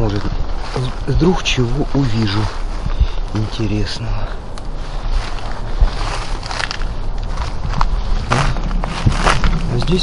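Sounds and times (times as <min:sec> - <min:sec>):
footsteps on stony ground: 0:00.0 - 0:10.0
steady low rumble: 0:00.0 - 0:10.0.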